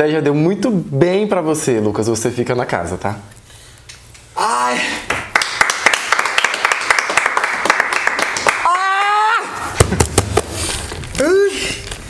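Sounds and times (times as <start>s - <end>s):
high-pitched cry of relief: 8.6s - 9.7s.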